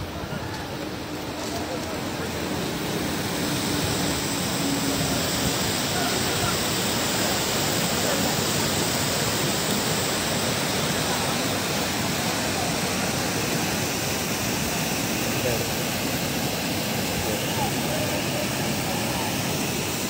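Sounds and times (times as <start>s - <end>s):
water rushing over a weir: 0.0s - 20.0s.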